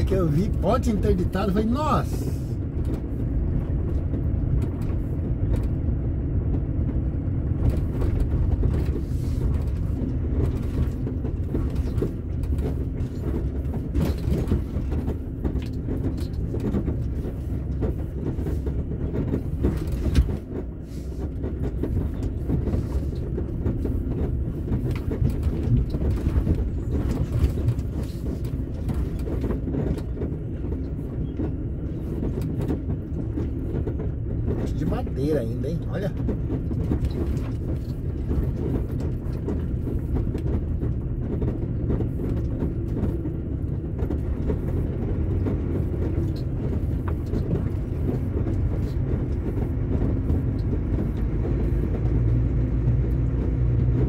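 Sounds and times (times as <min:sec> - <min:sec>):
cab rattling and knocking: 0:00.0 - 0:54.0
truck engine droning: 0:00.0 - 0:54.0.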